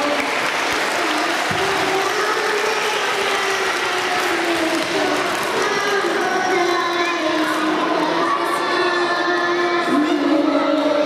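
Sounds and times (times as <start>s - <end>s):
children clapping: 0.0s - 11.0s.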